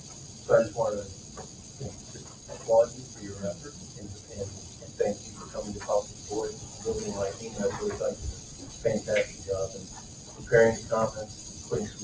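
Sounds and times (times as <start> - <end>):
indistinct talking: 0.0 - 12.0
recording hiss: 0.0 - 12.0.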